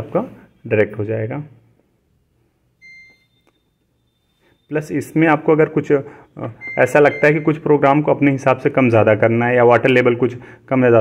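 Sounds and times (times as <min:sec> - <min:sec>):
short electronic beep: 0:02.8 - 0:05.1, 0:06.5 - 0:07.6.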